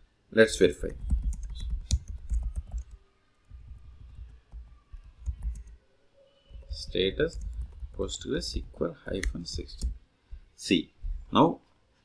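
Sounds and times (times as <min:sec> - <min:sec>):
computer keyboard typing: 0:00.8 - 0:05.8, 0:06.6 - 0:10.0.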